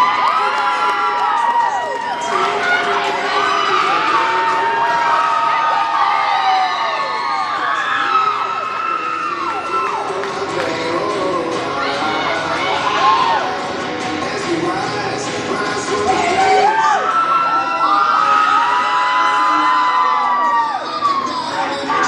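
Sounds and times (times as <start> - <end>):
crowd cheering and whooping: 0.0 - 13.6, 16.0 - 22.0.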